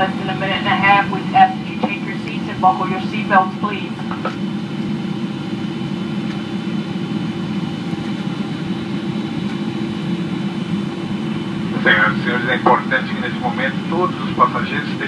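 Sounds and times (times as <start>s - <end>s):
airplane cabin rush of airflow: 0.0s - 15.0s.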